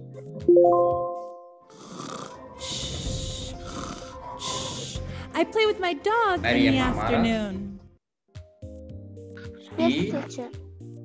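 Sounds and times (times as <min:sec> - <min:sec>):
soft background music: 0:00.0 - 0:07.9, 0:08.6 - 0:11.0.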